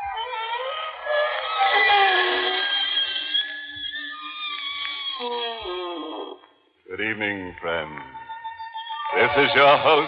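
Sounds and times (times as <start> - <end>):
wooden door creaking: 4.3 - 6.5.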